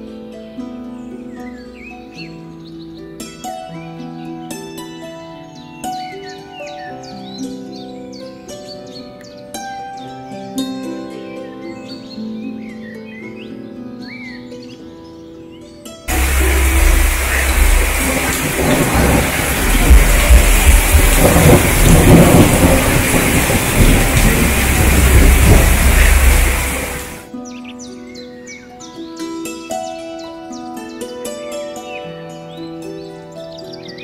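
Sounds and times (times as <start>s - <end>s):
plucked harp-like music: 0.0s - 16.0s, 27.3s - 34.0s
heavy rain on wooden decking: 16.1s - 27.3s
birds chirping: 16.1s - 28.9s.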